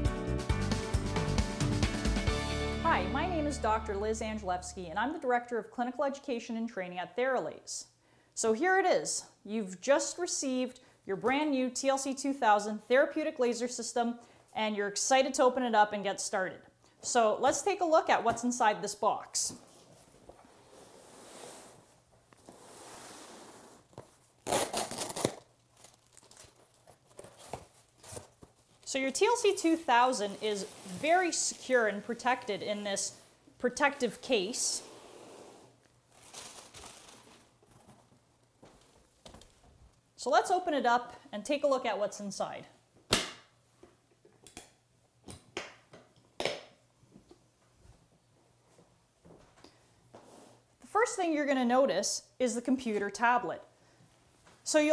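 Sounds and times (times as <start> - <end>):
cardboard box scraping on table: 20.5 - 23.9, 30.2 - 31.4
cardboard tearing and rustling: 24.0 - 28.8, 36.1 - 38.0.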